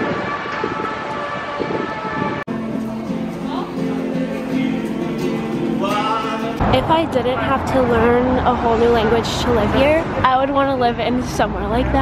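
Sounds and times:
street noise: 0:00.0 - 0:12.0
steady high tone: 0:02.5 - 0:09.1
acoustic guitar echoing: 0:02.5 - 0:11.8.

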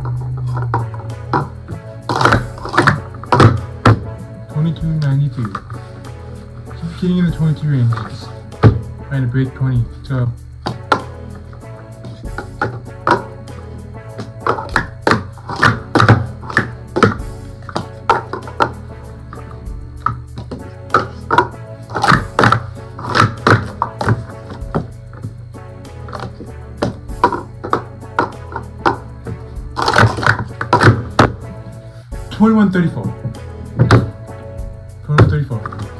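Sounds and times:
plastic cups clacking: 0:00.0 - 0:04.1, 0:05.0 - 0:05.8, 0:10.6 - 0:11.2, 0:12.1 - 0:13.4, 0:14.2 - 0:25.3, 0:26.1 - 0:29.1, 0:29.8 - 0:31.4, 0:35.2 - 0:35.9
background music: 0:00.0 - 0:35.9.

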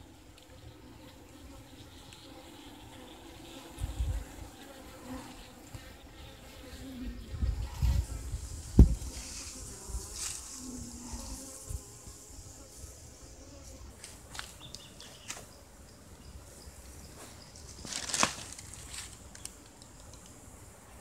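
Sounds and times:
bees buzzing: 0:00.0 - 0:21.0.

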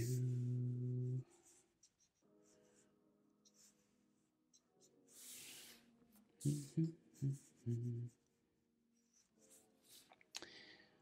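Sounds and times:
man humming: 0:00.0 - 0:01.2, 0:06.4 - 0:08.2
marker scratching on paper: 0:01.4 - 0:05.8, 0:09.0 - 0:10.1.

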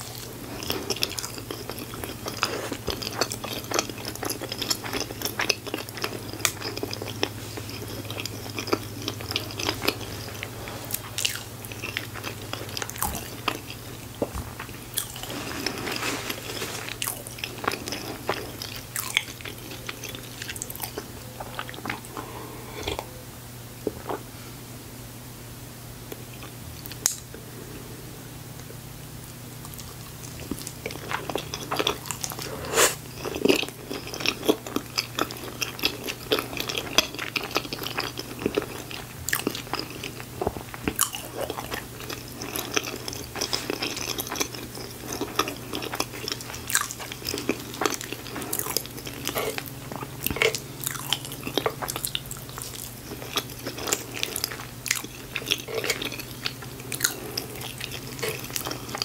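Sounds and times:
close chewing crunches: 0:00.0 - 0:23.1, 0:28.6 - 0:59.0.

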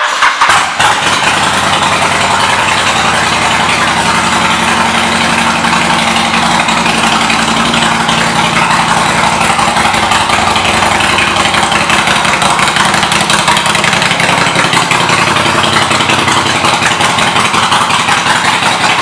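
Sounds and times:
motorcycle engine idling: 0:00.0 - 0:19.0.

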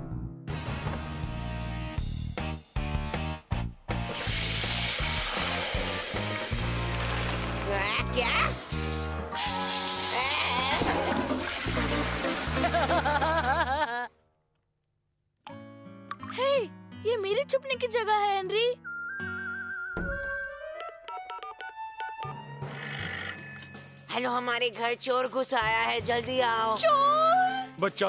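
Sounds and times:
background music: 0:00.0 - 0:13.9, 0:15.5 - 0:28.0
shower water spraying: 0:04.1 - 0:07.9, 0:08.5 - 0:13.4
soft background music: 0:15.5 - 0:28.0
telephone ringing: 0:22.6 - 0:24.0.

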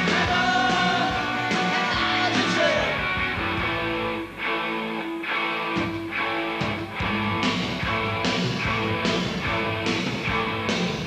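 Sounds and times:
electric guitars: 0:00.0 - 0:11.0
punk rock band playing: 0:00.0 - 0:11.0.

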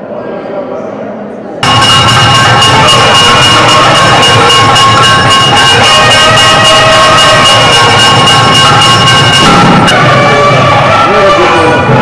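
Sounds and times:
reed pipes holding long tones: 0:01.6 - 0:12.0
steady drum beats: 0:01.6 - 0:12.0.

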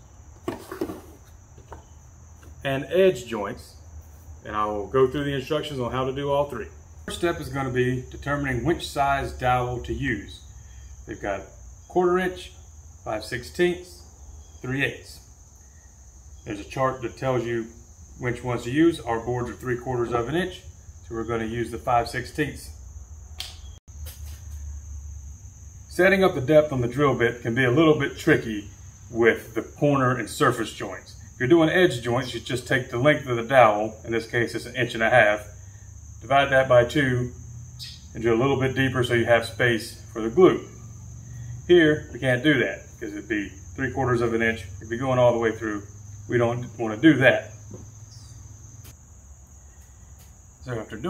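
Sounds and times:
wooden board knocking and scraping: 0:00.4 - 0:02.6.

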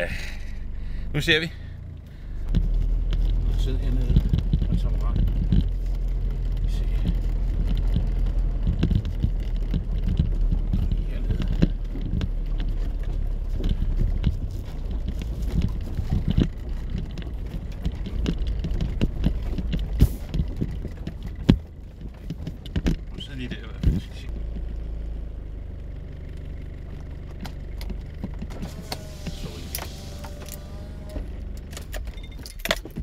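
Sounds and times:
car engine and tyres rumbling: 0:00.0 - 0:33.0
car knocking and rattling: 0:00.0 - 0:33.0.

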